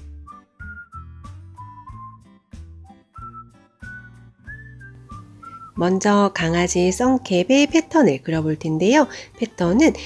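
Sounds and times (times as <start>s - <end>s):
whistled melody: 0.0s - 6.0s
woman speaking: 5.8s - 10.0s.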